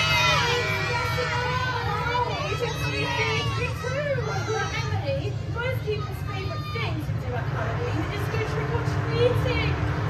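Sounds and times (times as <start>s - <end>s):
children calling out: 0.0s - 7.2s
steady low hum: 0.0s - 10.0s.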